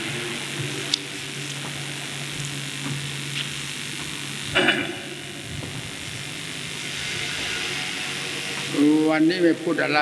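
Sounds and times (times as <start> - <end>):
low hum: 0.0 - 8.8
steady hiss: 0.0 - 10.0.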